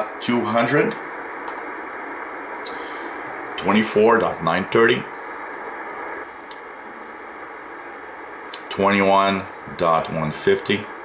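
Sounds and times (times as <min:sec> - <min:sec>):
radio receiver static hiss: 0:00.0 - 0:11.0.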